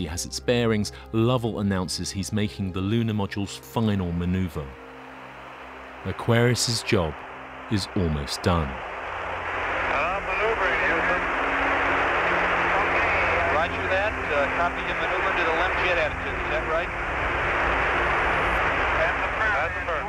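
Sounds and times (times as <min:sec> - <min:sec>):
low hum: 0:04.6 - 0:20.0
radio static hiss: 0:05.1 - 0:20.0
faint indistinct radio voices: 0:09.7 - 0:20.0.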